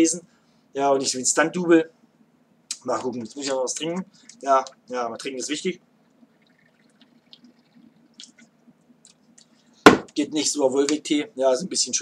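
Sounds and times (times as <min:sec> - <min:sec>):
man gulping from bottle: 0:06.2 - 0:08.5
loud knock: 0:09.9 - 0:10.1.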